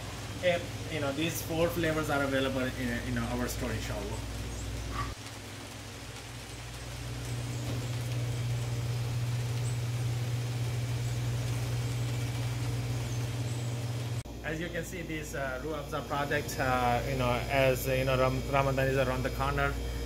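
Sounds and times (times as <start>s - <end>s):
low machine hum: 0.0s - 20.0s.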